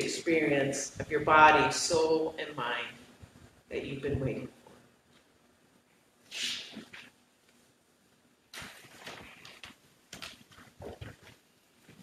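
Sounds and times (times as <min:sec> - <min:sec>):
robe rustling on microphone: 0:08.5 - 0:12.0.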